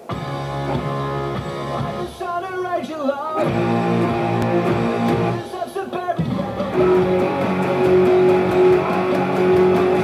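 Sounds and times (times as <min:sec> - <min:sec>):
electric guitar distorted chords: 0:00.0 - 0:02.5, 0:03.4 - 0:05.6, 0:06.2 - 0:10.0.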